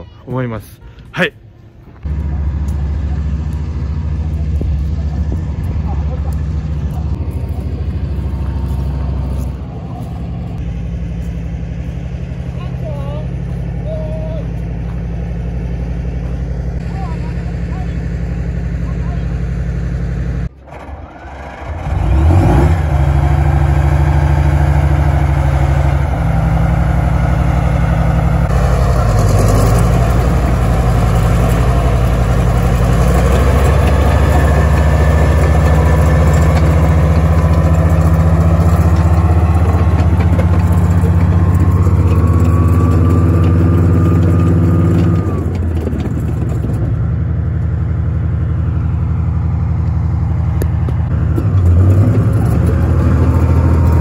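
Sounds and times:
tank diesel engine droning: 0.0s - 54.0s.

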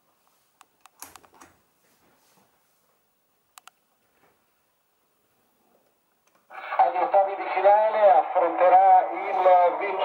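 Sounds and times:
man speaking over old radio: 6.5s - 10.0s.

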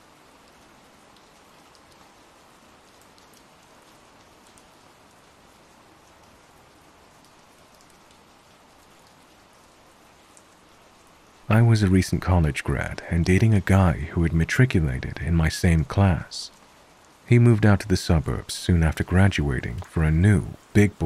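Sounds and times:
faint rainfall hiss: 0.0s - 21.0s
rain drop ticks: 0.0s - 21.0s.

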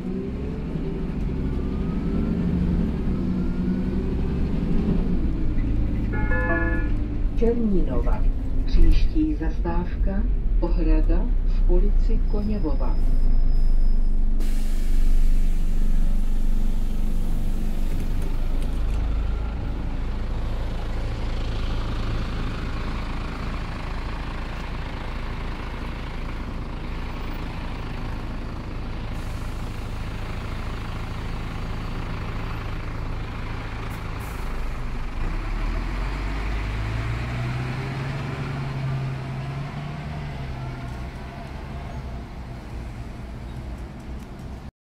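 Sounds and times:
bus diesel engine idling: 0.0s - 44.6s
compressed air hiss: 14.4s - 16.7s.

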